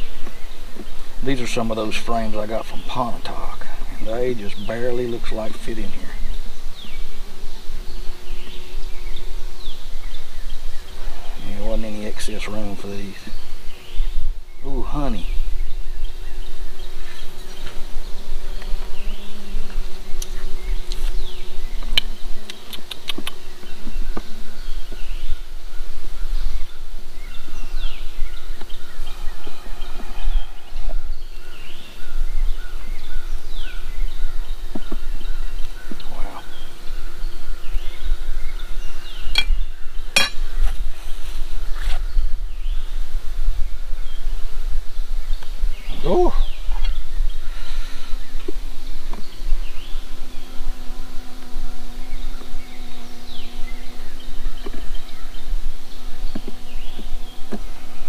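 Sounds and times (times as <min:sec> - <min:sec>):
honey bees buzzing: 0:00.0 - 0:58.0.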